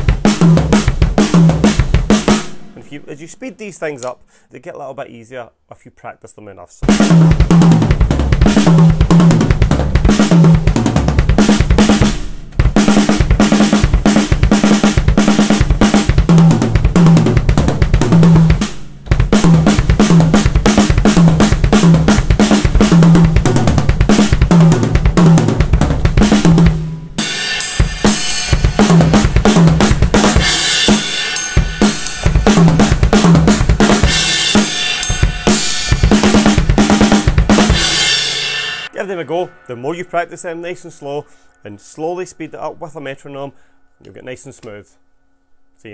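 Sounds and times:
drum kit played fast: 0:00.0 - 0:04.9, 0:06.8 - 0:41.4
cymbals ringing: 0:30.4 - 0:32.5, 0:34.1 - 0:36.1.

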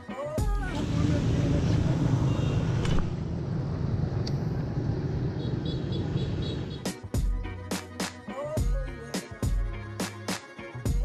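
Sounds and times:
background music: 0:00.0 - 0:01.9, 0:06.7 - 0:11.0
road traffic noise: 0:00.6 - 0:07.0.

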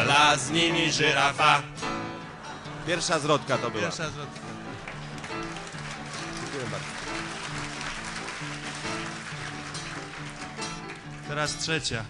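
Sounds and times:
acoustic guitar chords: 0:00.0 - 0:11.6.

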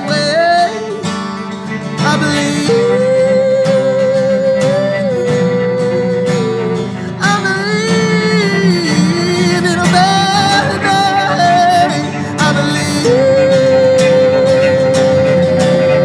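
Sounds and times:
acoustic guitar: 0:00.0 - 0:16.0.

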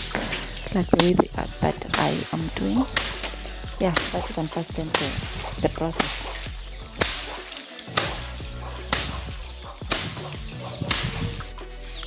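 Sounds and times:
dry pods rustling: 0:00.0 - 0:12.0
wooden stick beating dry pods: 0:00.0 - 0:12.0.

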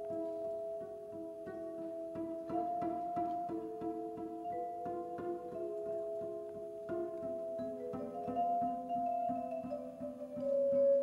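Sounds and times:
vibraphone played with mallets: 0:02.2 - 0:11.0.

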